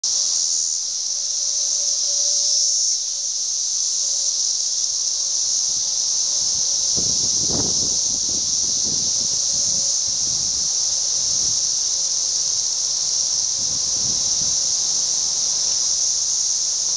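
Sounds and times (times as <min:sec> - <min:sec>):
cicadas droning: 0:00.0 - 0:16.9.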